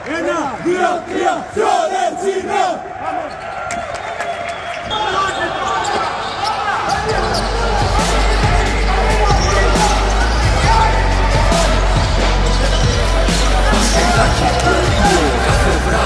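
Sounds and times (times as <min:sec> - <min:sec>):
group of players shouting: 0:00.0 - 0:03.4, 0:04.8 - 0:16.0
hall chatter: 0:04.6 - 0:16.0
music with heavy bass: 0:07.2 - 0:16.0.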